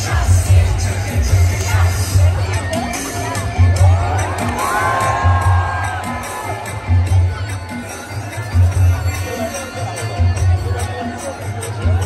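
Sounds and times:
crowd cheering and shouting: 0.0 - 12.0
loud concert music with bass beat: 0.0 - 12.0.

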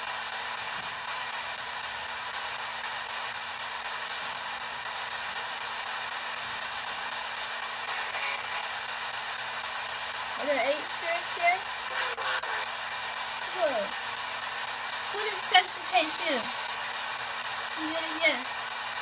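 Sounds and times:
radio static rush: 5.4 - 18.5
voice-like fragment: 10.5 - 12.6.

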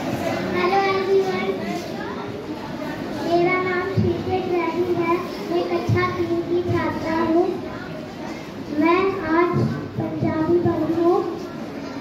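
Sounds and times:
girl speaking into a microphone: 0.0 - 12.0.

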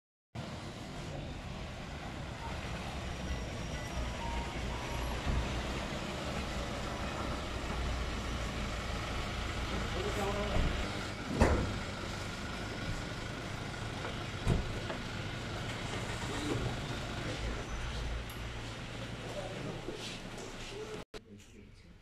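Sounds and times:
vehicle engines rumbling: 0.4 - 21.0.

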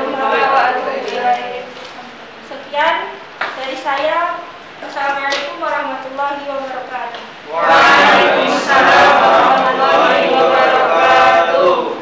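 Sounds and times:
students answering in unison: 0.0 - 1.4, 7.5 - 12.0.

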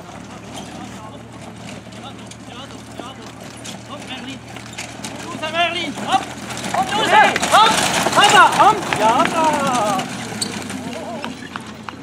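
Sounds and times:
harness and carriage clinking: 0.0 - 12.0
horse hoofbeats: 0.0 - 12.0.

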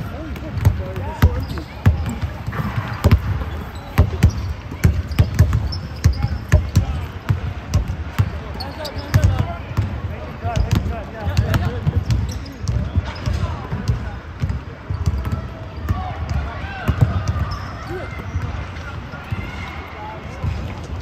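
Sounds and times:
sneaker squeaks: 0.1 - 7.1, 8.2 - 13.8, 14.4 - 16.3, 16.9 - 18.7
basketball bouncing on hardwood: 4.0 - 8.3.

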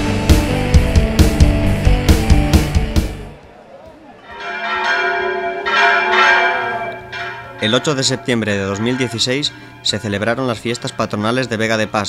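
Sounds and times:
church bells ringing: 4.2 - 12.0.

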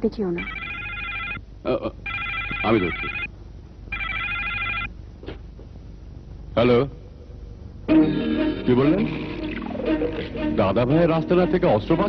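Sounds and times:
telephone ringing: 0.4 - 1.4, 2.0 - 3.3, 3.9 - 4.9.

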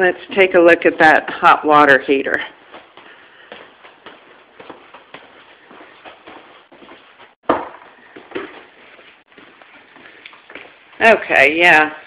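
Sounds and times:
footsteps on hard floor: 2.4 - 11.1.

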